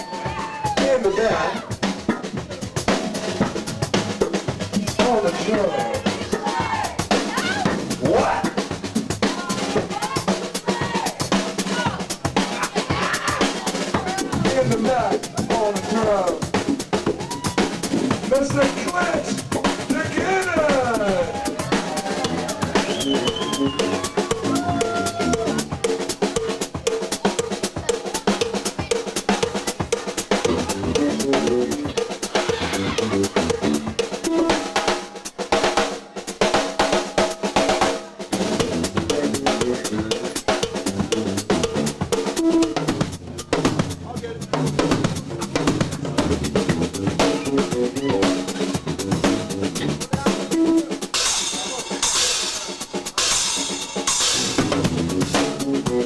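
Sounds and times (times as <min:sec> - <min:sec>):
bass guitar: 0:00.0 - 0:10.1, 0:11.7 - 0:29.0, 0:30.3 - 0:34.7, 0:38.4 - 0:51.0, 0:54.2 - 0:56.0
drum kit beat: 0:00.0 - 0:56.0.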